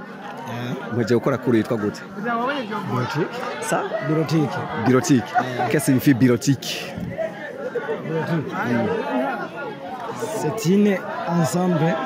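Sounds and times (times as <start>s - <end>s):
background chatter: 0.0s - 12.0s
men talking into microphone: 0.8s - 2.0s, 2.8s - 12.0s.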